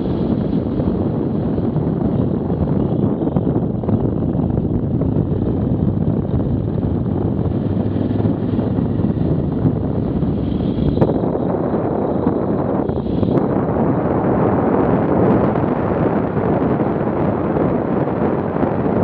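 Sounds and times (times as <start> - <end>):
motorcycle running: 0.0 - 19.0
wind noise on microphone: 0.0 - 19.0.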